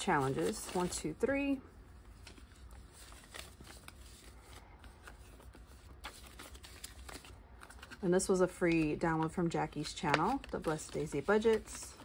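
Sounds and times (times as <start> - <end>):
paper money rustling: 0.0 - 1.4, 2.1 - 12.0
low steady hum: 0.0 - 12.0
plastic pages clicking: 8.7 - 12.0.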